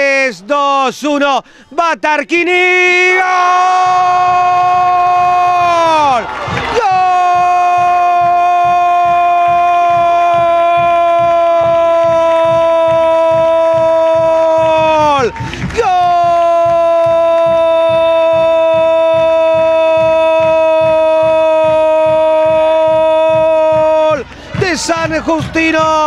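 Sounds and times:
commentator's long goal cry: 3.0 - 26.0
steady low beat: 3.8 - 26.0.

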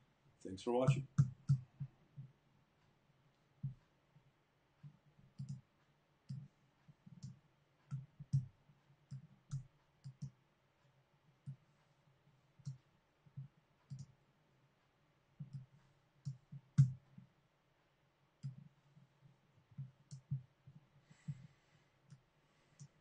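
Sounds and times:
computer mouse clicks: 4.8 - 5.7, 6.3 - 10.4, 12.6 - 14.1, 15.4 - 17.3, 18.4 - 18.7, 19.7 - 21.5.

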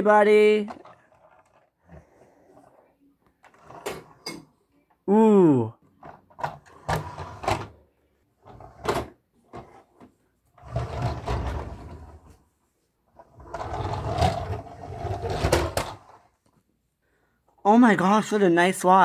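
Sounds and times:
toy car wheels rolling: 0.4 - 2.8.

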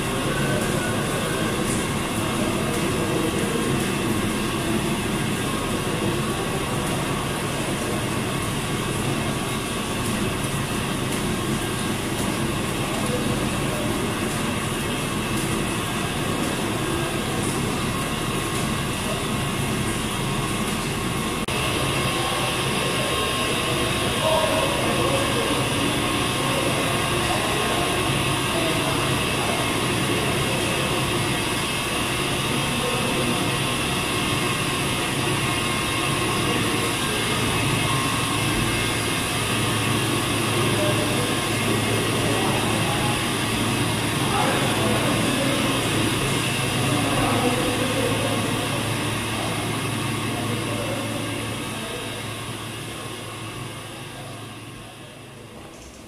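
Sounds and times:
dairy machinery whirring and humming: 0.0 - 56.0.

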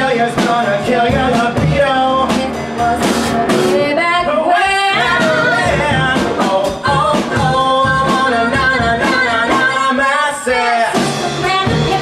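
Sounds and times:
pop-rock band accompaniment: 0.0 - 12.0.

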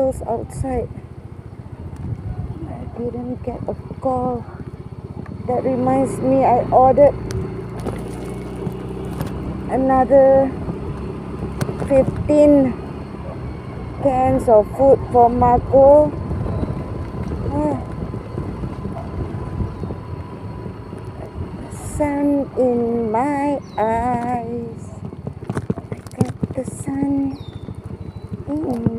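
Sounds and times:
road noise: 0.0 - 28.9
small motorbike engine running: 0.0 - 28.9
wind rumbling over microphone: 0.0 - 28.9.

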